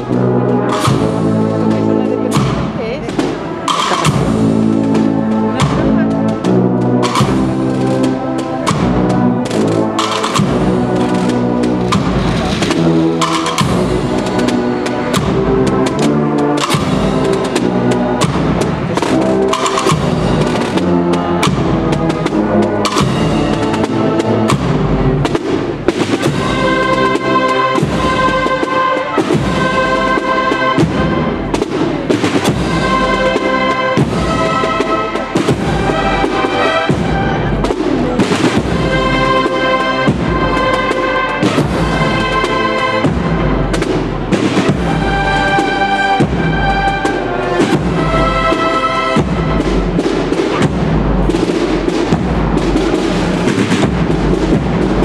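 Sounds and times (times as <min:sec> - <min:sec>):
brass melody: 0:00.0 - 0:55.0
marching band playing: 0:00.0 - 0:55.0
snare drums: 0:00.0 - 0:55.0.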